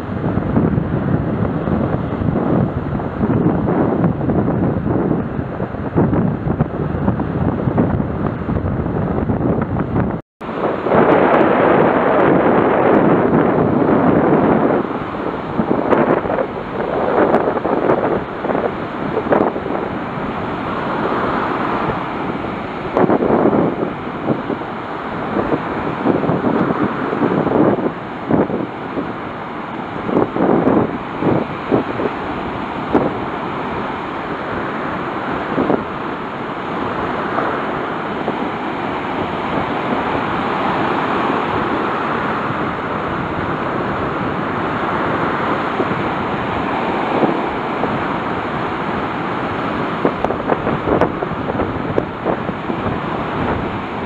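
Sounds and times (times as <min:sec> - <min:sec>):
waves breaking on beach: 0:00.0 - 0:54.0
wind buffeting microphone: 0:00.0 - 0:54.0.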